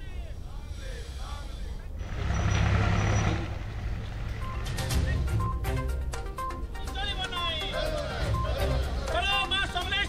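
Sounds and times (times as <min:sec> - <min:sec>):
heavy vehicle engine rumbling past: 0:01.8 - 0:06.1.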